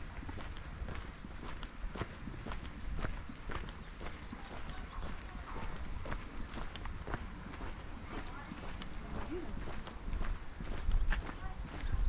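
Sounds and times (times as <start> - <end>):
footsteps on brick path: 0.0 - 12.0.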